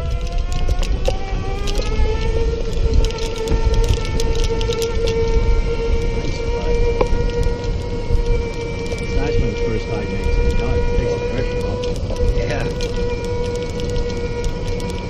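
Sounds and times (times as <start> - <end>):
electric drive motor whining: 0.0 - 15.0
low rumble: 0.0 - 15.0
scattered clicks: 0.0 - 15.0.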